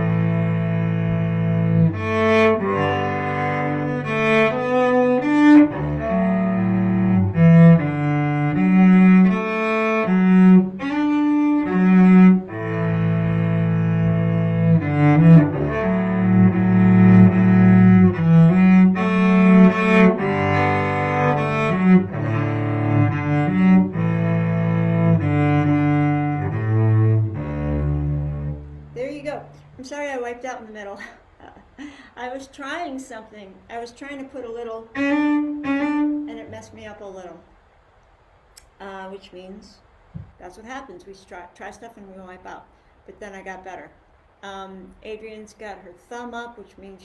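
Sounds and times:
bowed cello playing slow tune: 0.0 - 29.8, 33.9 - 37.2.

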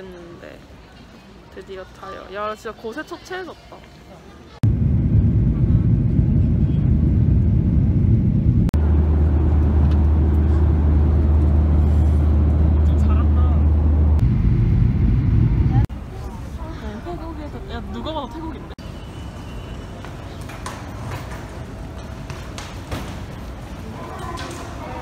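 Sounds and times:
airliner cabin engine drone: 4.6 - 15.9.

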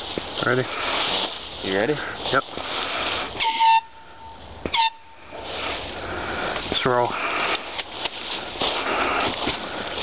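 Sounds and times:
air horn blasts: 3.4 - 5.4.

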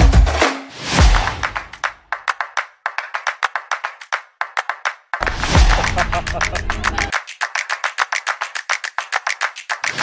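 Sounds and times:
rhythmic hand claps: 0.0 - 10.0.

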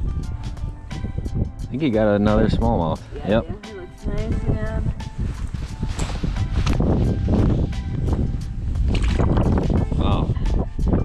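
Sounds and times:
background music: 0.0 - 11.0
wind buffeting microphone: 0.0 - 11.0.

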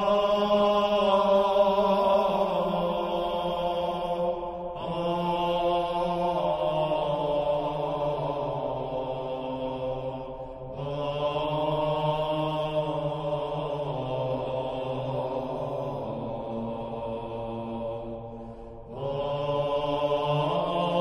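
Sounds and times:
slow chanted singing: 0.0 - 21.0.

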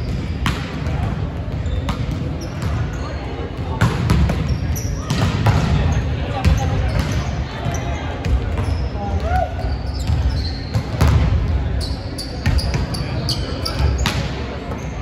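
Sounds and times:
volleyballs hit and bouncing: 0.0 - 11.6, 12.3 - 15.0.

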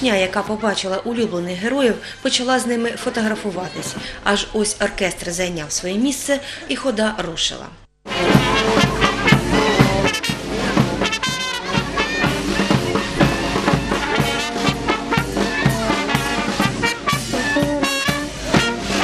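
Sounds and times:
saxophone: 8.1 - 19.0
street brass band marching: 8.1 - 19.0.

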